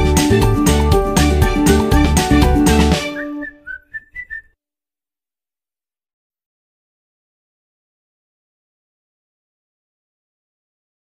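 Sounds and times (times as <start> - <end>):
whistled notes: 3.0 - 4.6.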